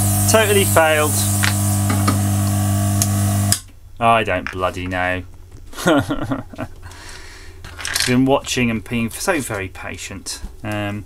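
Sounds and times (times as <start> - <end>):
hot-air tool blowing with hiss: 0.0 - 3.6.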